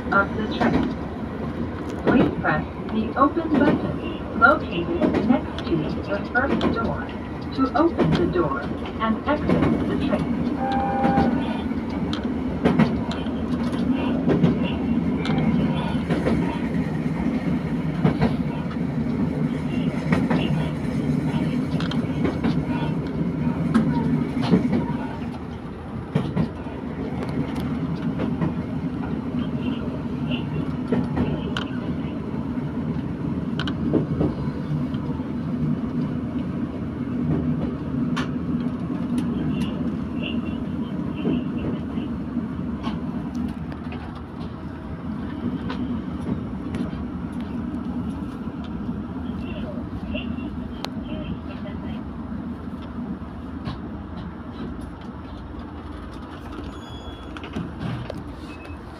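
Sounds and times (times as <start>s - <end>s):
clickety-clack of train wheels: 0.0s - 52.0s, 52.6s - 58.9s.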